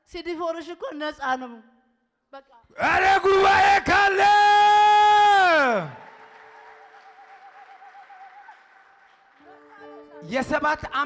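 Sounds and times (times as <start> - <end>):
loud held shout: 2.8 - 6.1.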